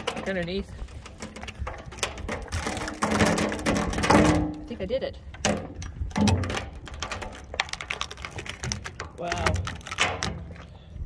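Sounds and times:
wood creaking and cracking: 0.0s - 11.0s.

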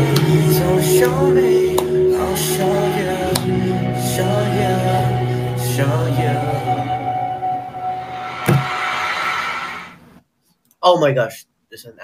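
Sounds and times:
background music with held tones: 0.0s - 9.3s.

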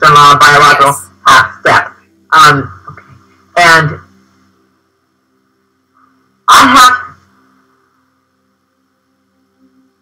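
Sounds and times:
person speaking: 0.0s - 4.2s
faint steady hum: 0.0s - 10.0s.

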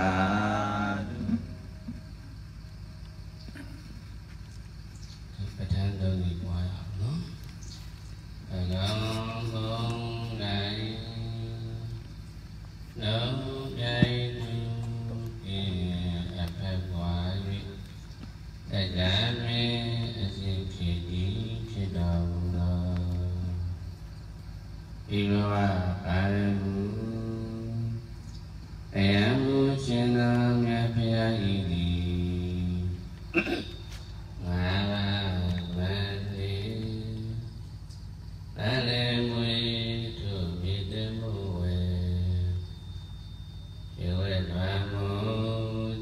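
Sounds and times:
monks chanting low notes: 0.0s - 46.0s.

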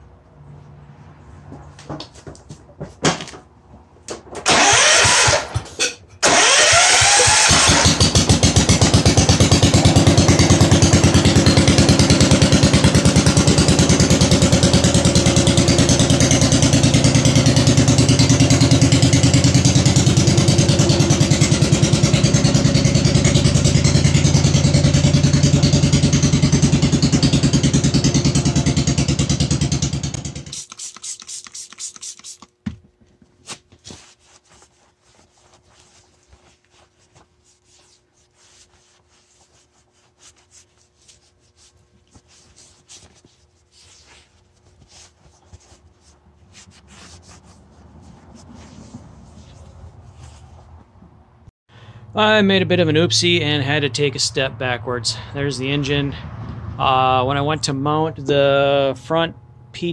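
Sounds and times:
starter cranking engine: 4.4s - 32.5s
small engine running steadily: 4.5s - 5.6s, 6.2s - 30.6s.

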